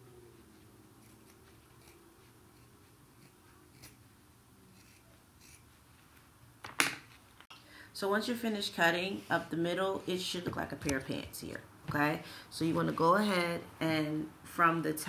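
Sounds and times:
scissors snipping fabric: 1.0 - 4.0, 4.7 - 5.7.

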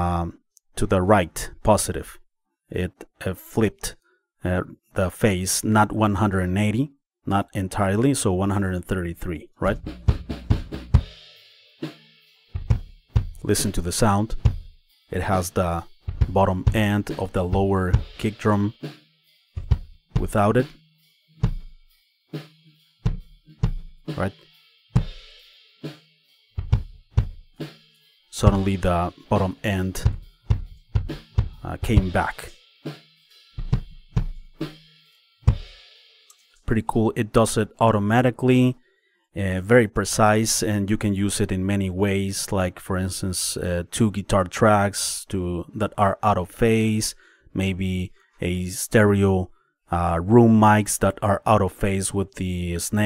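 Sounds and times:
kick and snare drum hits: 9.8 - 11.2, 12.6 - 13.5, 14.3 - 14.7, 16.0 - 16.9, 19.6 - 20.3, 23.1 - 24.0, 25.0 - 25.2, 26.6 - 27.4, 30.0 - 32.1, 33.6 - 34.6, 35.5 - 35.7
cymbal and hi-hat hiss: 10.7 - 16.1, 17.0 - 26.5, 27.5 - 36.5.

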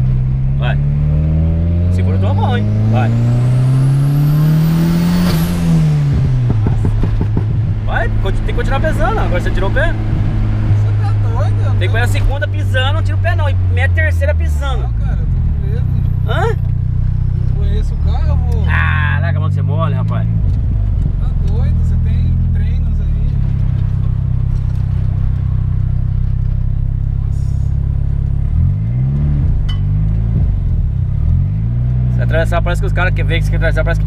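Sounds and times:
turbocharged car engine under load: 0.0 - 34.0.

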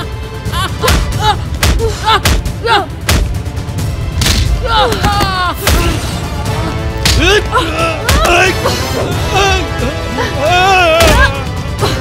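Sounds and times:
background music: 0.0 - 12.0
punch and slap impacts: 0.9 - 3.4, 4.2 - 5.9
man grunting cries: 7.2 - 12.0.

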